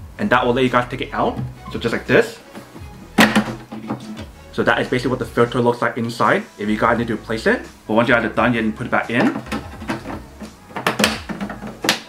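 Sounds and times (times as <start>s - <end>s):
plastic clicks and knocks: 9.2s - 12.0s.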